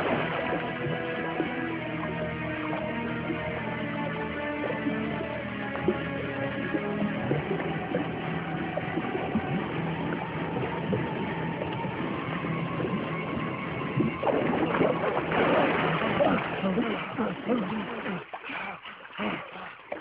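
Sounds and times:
loud splashing in swimming pool: 0.0s - 1.8s, 14.2s - 20.0s
background music with held notes: 0.0s - 16.7s.

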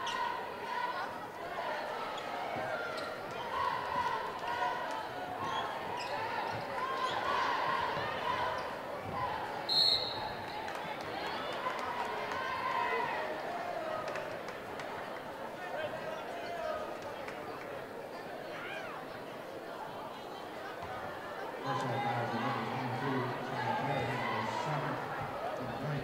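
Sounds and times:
crowd and player voices: 0.0s - 26.0s
referee whistle blast: 9.7s - 10.3s.

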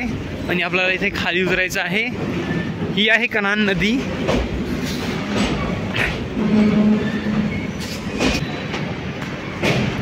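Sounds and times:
train rumbling over bridge: 0.0s - 10.0s
wheels clacking on rail joints: 0.4s - 2.6s, 3.2s - 10.0s.

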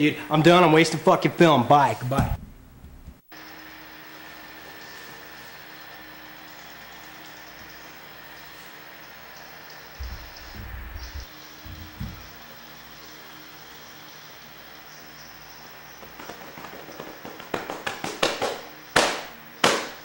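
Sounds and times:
thumps: 2.1s - 3.3s, 10.0s - 12.4s
low rumble: 2.2s - 3.2s, 10.0s - 12.3s.

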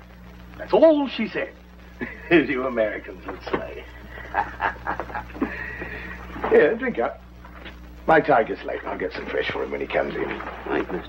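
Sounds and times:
man chuckling: 4.1s - 5.9s.

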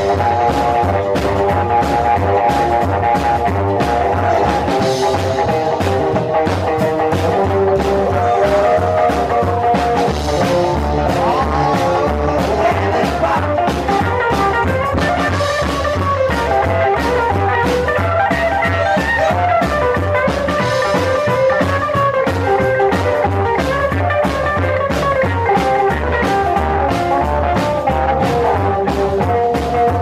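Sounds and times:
electric guitar run of notes: 0.0s - 30.0s
pulsing upright bass: 0.0s - 30.0s.

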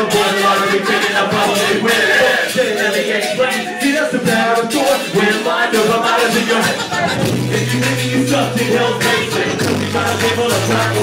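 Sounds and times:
hip-hop band playing: 0.0s - 11.0s
steady drum beat: 0.0s - 11.0s
bass line of held notes: 7.0s - 11.0s.

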